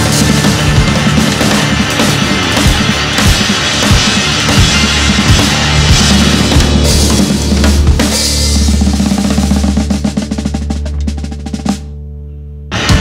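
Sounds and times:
band striking a loud chord: 0.0s - 11.2s
drum roll: 0.0s - 12.0s, 12.7s - 13.0s.

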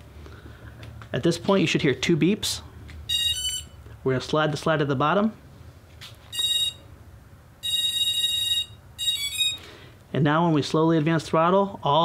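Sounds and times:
electronic motor beep: 3.1s - 3.8s, 6.3s - 6.8s, 7.6s - 9.7s.

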